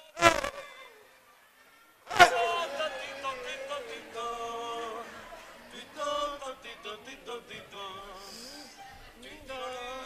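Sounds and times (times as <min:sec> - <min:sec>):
buzzy vocal cry: 0:02.1 - 0:06.9.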